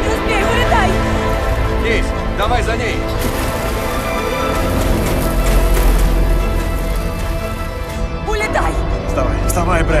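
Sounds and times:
water splashing: 3.1 - 8.2.

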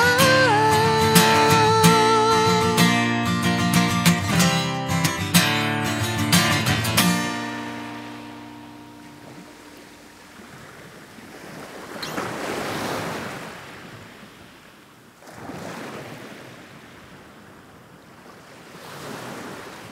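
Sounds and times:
acoustic guitar chord: 0.0 - 10.4
small waves washing onto sand: 5.4 - 19.9.

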